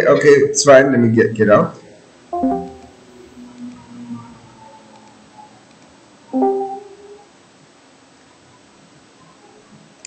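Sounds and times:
two-note notification chime: 2.4 - 3.1, 6.4 - 7.1.

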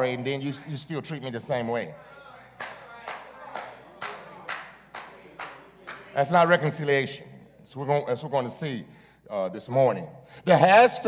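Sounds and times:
hand claps: 2.5 - 6.1.

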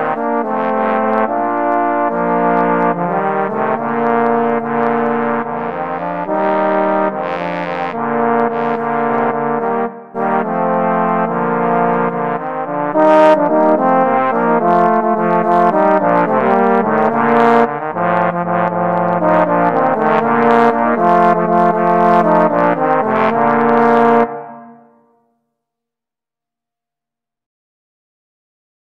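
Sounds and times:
trombone trio playing: 0.0 - 24.9.

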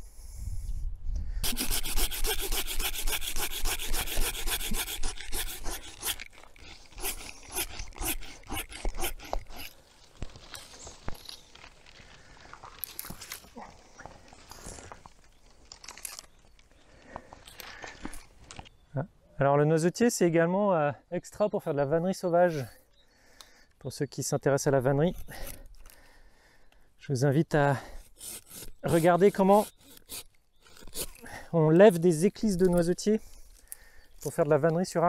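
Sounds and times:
hand saw cutting stems: 1.4 - 9.8, 27.8 - 33.0
branches clicking and snapping: 5.0 - 18.7.

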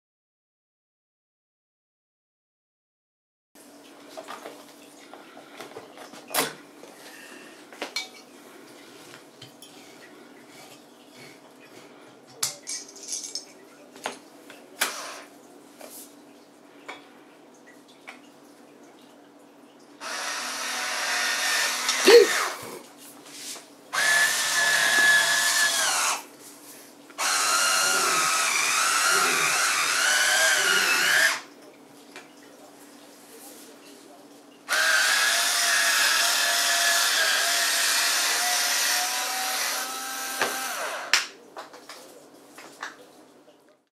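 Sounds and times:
electric wine opener motor whining: 20.0 - 22.7, 24.0 - 26.2, 27.2 - 31.5, 34.7 - 41.2.

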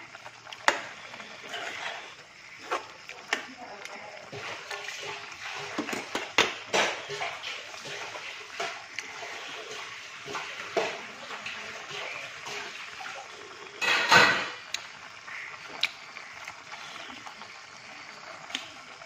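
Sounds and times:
curry simmering with wet sizzle: 0.0 - 19.0
metal spoon scraping a pan: 1.3 - 2.8.

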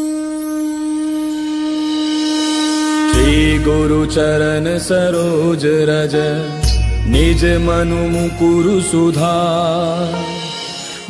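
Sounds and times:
long horn note: 0.0 - 5.4.

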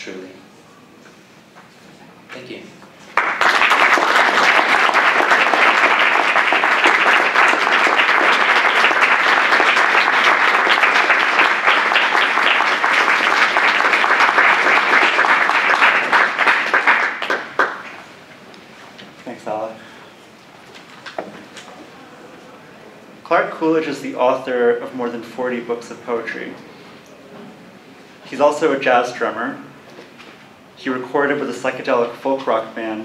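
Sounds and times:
audience applauding: 3.1 - 18.1.

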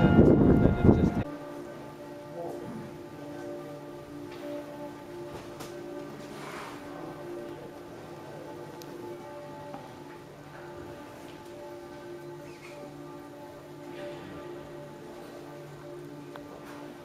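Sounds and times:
audience rustling: 0.0 - 17.0
pipe organ chords: 0.0 - 17.0.

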